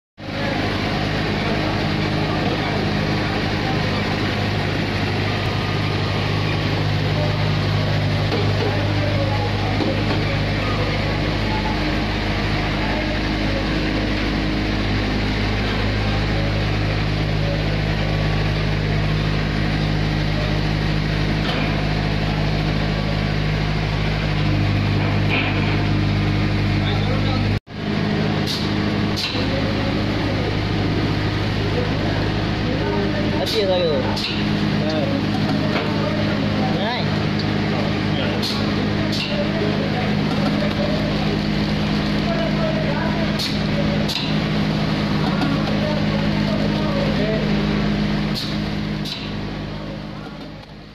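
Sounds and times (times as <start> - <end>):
machinery humming and whirring: 0.2 - 50.9.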